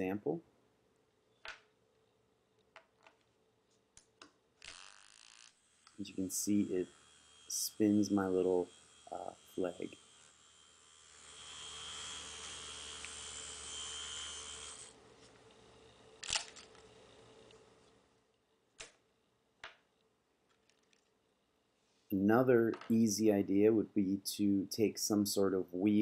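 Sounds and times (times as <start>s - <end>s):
small motor whirring: 4.6s - 18.0s.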